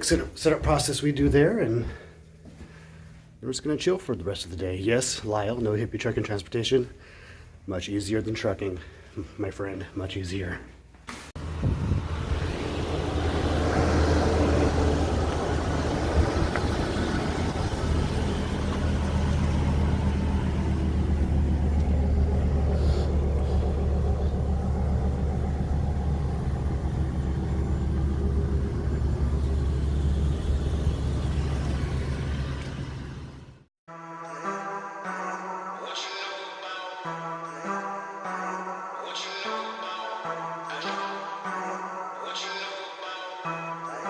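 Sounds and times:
minibus engine idling: 0:11.4 - 0:33.7.

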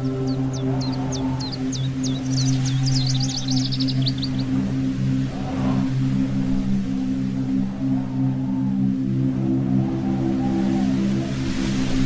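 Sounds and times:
low synth drone: 0:00.0 - 0:12.0
slow synth sweeps: 0:00.0 - 0:12.0.

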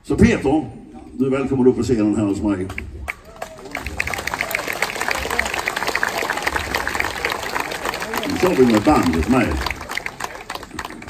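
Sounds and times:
audience applauding: 0:03.0 - 0:11.0.

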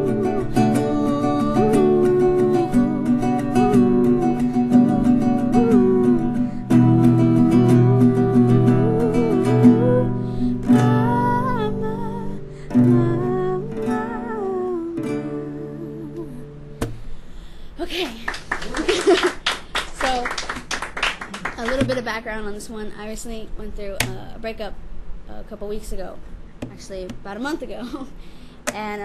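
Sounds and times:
young woman singing: 0:00.0 - 0:16.5
acoustic guitar strumming: 0:00.0 - 0:17.6, 0:21.5 - 0:24.7, 0:25.5 - 0:27.8.

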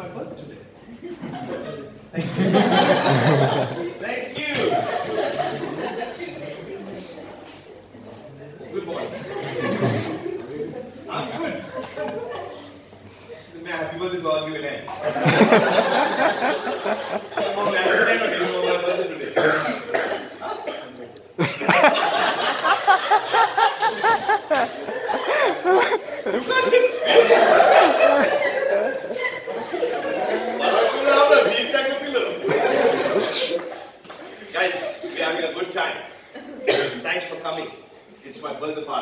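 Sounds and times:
people laughing: 0:00.9 - 0:07.1, 0:08.7 - 0:13.4, 0:14.9 - 0:35.5
people talking: 0:01.4 - 0:12.8, 0:13.6 - 0:33.8
person coughing: 0:17.8 - 0:18.5, 0:19.2 - 0:21.0, 0:36.4 - 0:37.0.

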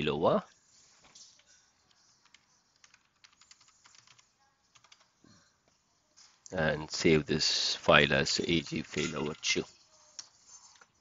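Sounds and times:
keyboard typing: 0:00.7 - 0:05.8.

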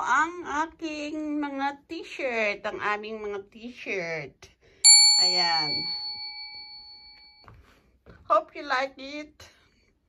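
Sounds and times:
notification bell ding: 0:04.9 - 0:07.4.

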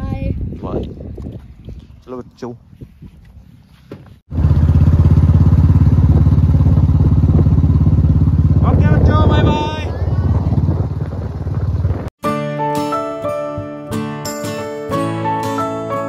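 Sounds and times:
motorcycle engine running: 0:04.3 - 0:12.1.

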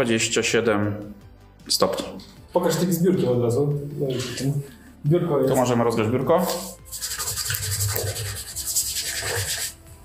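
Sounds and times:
hand rubbing a flat surface: 0:06.4 - 0:09.8.

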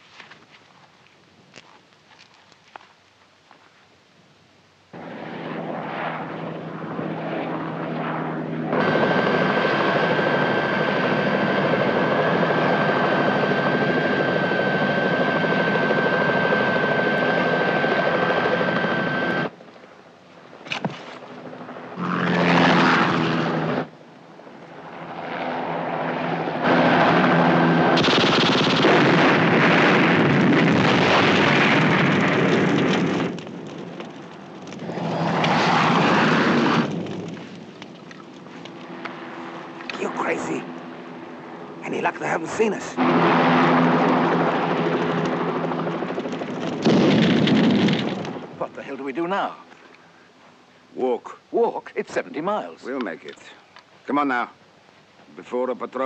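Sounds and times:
aircraft engine noise: 0:04.9 - 0:51.5
helicopter turbine whine: 0:05.0 - 0:53.3
gunfire: 0:27.9 - 0:33.3.

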